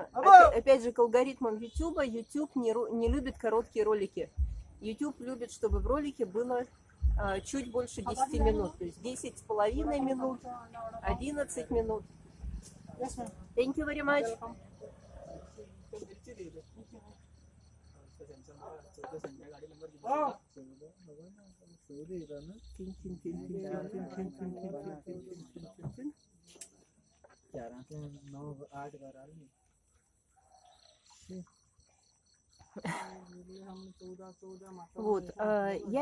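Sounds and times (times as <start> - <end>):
crickets chirping: 0.0 - 36.0.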